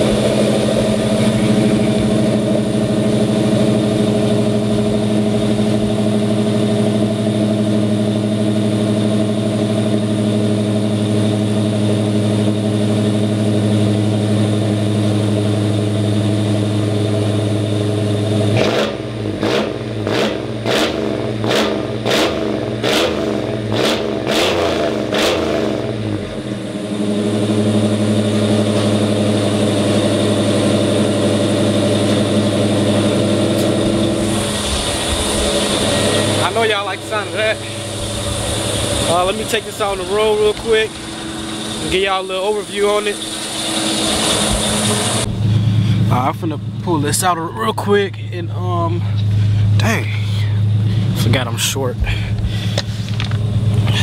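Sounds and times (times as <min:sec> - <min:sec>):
car engine idling loud: 0:00.0 - 0:54.0
engine revving throttle blips: 0:00.0 - 0:54.0.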